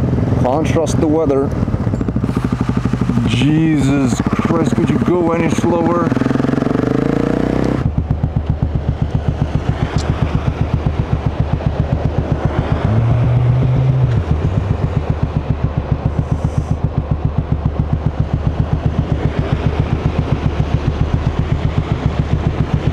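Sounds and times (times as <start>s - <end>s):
motorcycle engine idling: 0.0s - 22.9s
rush of riding noise: 0.0s - 22.9s.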